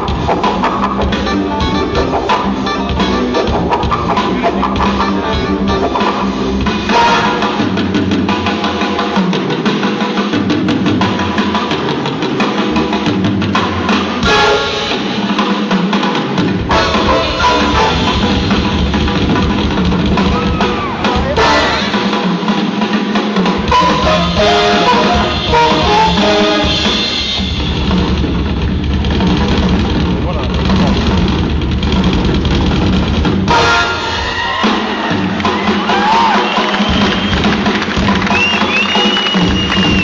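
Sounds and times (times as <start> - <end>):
drum kit beats: 0.0 - 40.0
jazz-funk band playing: 0.0 - 40.0.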